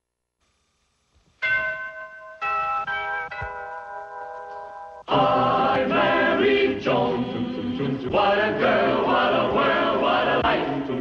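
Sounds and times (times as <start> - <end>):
bell-like chime notes: 1.4 - 5.1.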